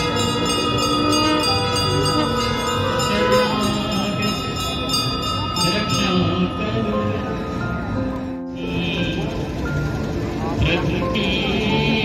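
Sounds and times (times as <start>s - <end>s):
amplified devotional singing and music: 0.0s - 9.9s, 10.5s - 12.0s
bells ringing: 0.0s - 12.0s.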